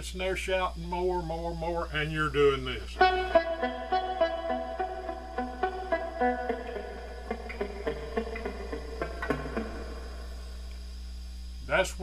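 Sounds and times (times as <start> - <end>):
amplifier mains hum: 0.0 - 12.0
electric guitar picking: 3.0 - 10.9.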